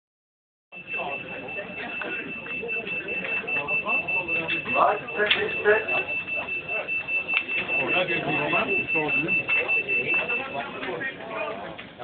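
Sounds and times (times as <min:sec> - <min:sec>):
people talking: 0:00.8 - 0:12.0.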